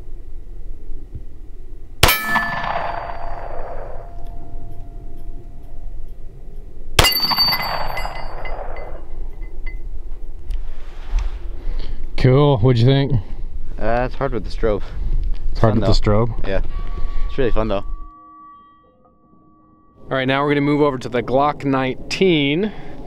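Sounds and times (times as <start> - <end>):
steel plate target ringing: 2.0 - 6.2, 7.0 - 9.9, 16.5 - 20.8.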